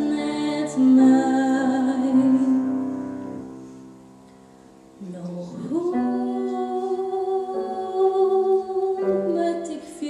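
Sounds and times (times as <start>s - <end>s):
woman singing a ballad: 0.0s - 3.0s, 5.0s - 10.0s
piano chords: 0.0s - 10.0s.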